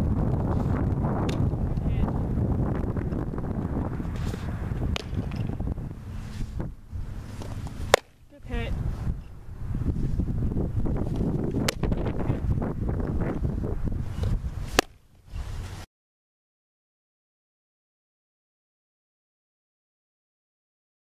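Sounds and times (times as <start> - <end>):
wind buffeting microphone: 0.0 - 15.9
softball smacking into leather mitt: 4.9 - 5.5, 7.4 - 8.2, 14.7 - 15.0.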